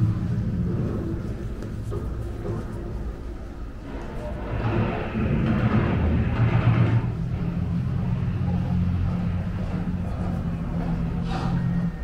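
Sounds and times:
film soundtrack rumble and hum: 0.0 - 12.0.

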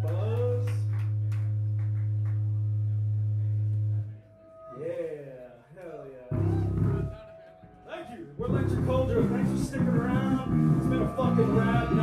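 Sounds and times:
low amplifier drone: 0.0 - 4.9, 6.3 - 7.8, 8.4 - 12.0.

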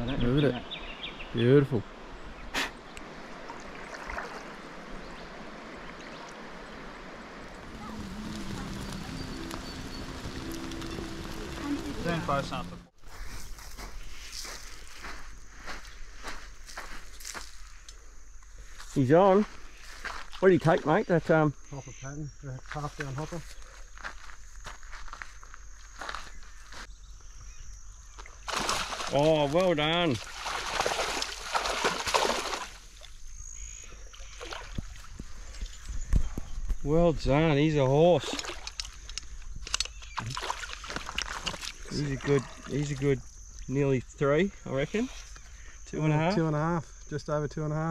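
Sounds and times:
water splashing and sloshing: 3.0 - 13.0, 28.2 - 33.2, 34.0 - 36.3, 38.2 - 43.2
footsteps on grass and sand: 7.6 - 20.9, 22.6 - 27.0.

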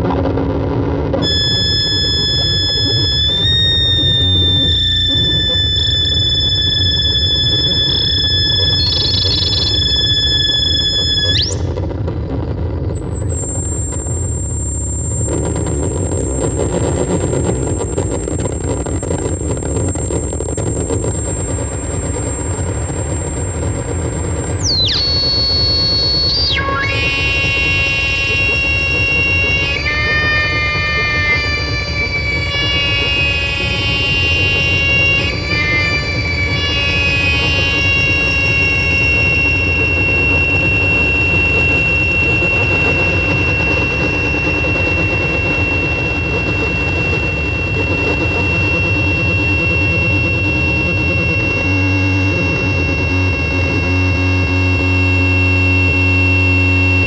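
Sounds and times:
electronic squealing tones: 0.0 - 57.0
low electronic rumble: 0.0 - 57.0
thin high whine: 0.0 - 57.0
tone sweeping down: 0.0 - 57.0.

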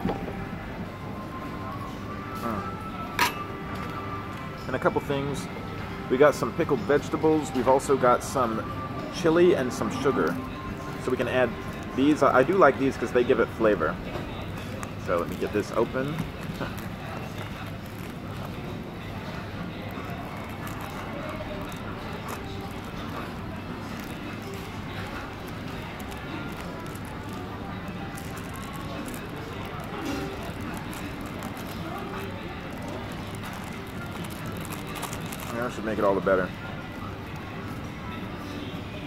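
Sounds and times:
background music: 0.0 - 39.0
crowd chatter: 0.0 - 39.0
plastic packet crinkling: 14.6 - 36.5.

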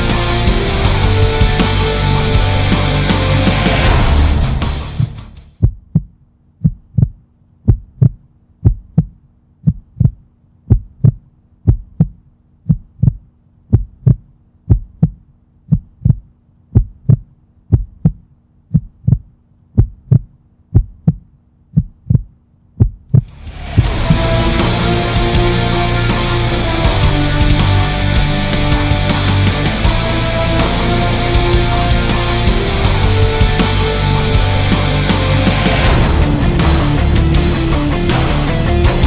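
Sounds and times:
heartbeat thumps: 4.0 - 24.3.

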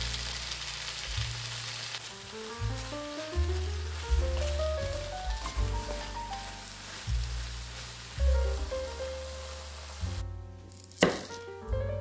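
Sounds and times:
meat sizzling in a wok: 0.0 - 11.5
background music: 2.1 - 12.0
knife striking cutting board: 11.0 - 11.4.

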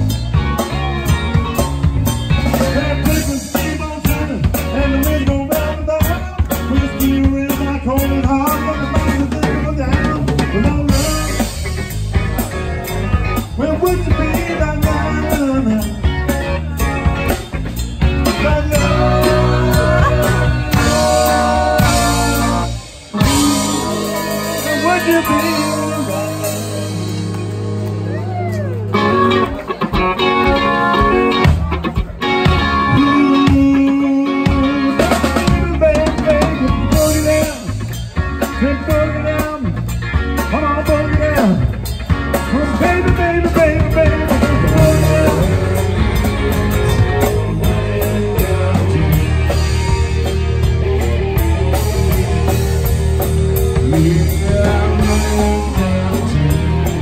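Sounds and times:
bass guitar: 0.0 - 57.0
drum kit beat: 0.0 - 57.0
electric guitar: 0.0 - 57.0
live band playing: 0.0 - 57.0.

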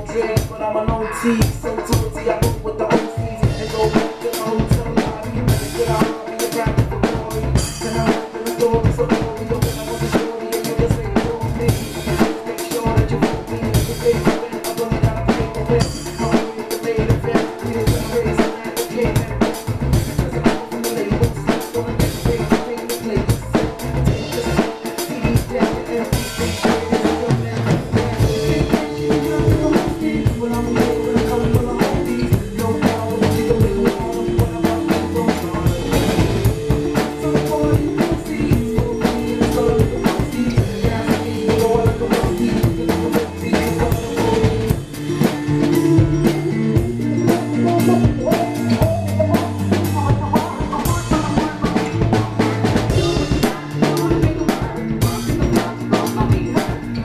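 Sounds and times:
acoustic drum kit playing: 0.0 - 57.0
recorded instrumental band track: 0.0 - 57.0.

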